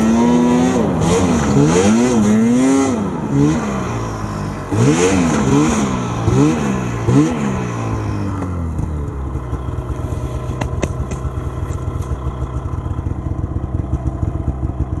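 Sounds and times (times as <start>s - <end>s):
snowmobile engine revving and idling: 0.0s - 15.0s.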